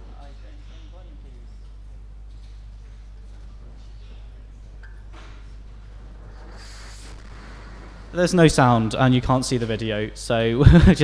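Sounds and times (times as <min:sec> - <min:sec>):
low electrical hum: 0:00.0 - 0:11.0
soft hiss: 0:03.8 - 0:11.0.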